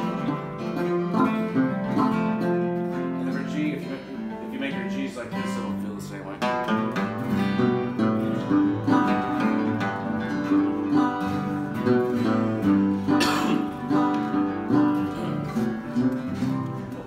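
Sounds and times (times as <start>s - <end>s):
acoustic guitar strumming: 0.0s - 17.0s.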